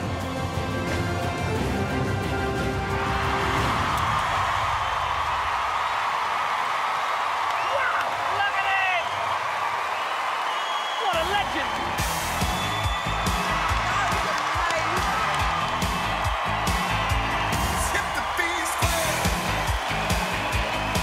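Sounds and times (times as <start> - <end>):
music: 0.0 - 5.3, 11.1 - 21.0
audience cheering and applauding: 0.0 - 21.0.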